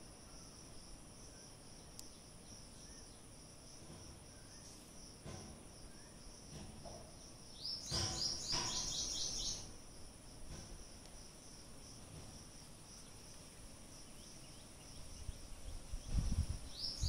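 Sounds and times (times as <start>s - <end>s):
crickets chirring: 0.0s - 17.0s.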